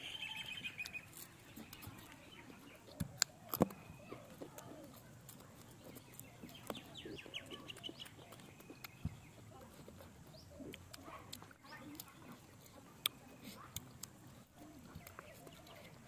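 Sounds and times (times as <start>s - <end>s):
chicken being torn apart: 0.2s - 12.2s.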